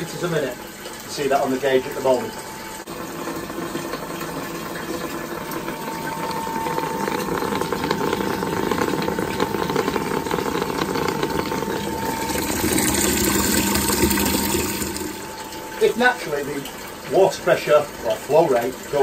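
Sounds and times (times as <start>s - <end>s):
faint steady hum: 0.0s - 19.0s
water rushing from a tap: 0.0s - 19.0s.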